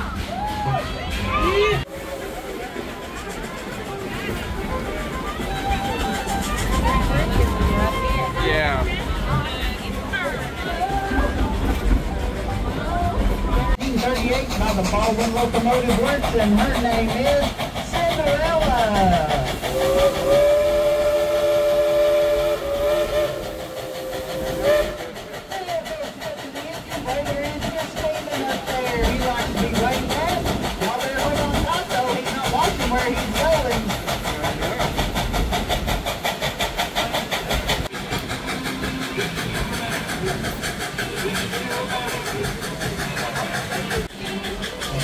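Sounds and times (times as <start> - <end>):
passengers chattering: 0.0 - 45.0
rumble of moving train: 0.0 - 45.0
steam locomotive beat: 0.0 - 45.0
steam locomotive whistle: 19.7 - 25.3.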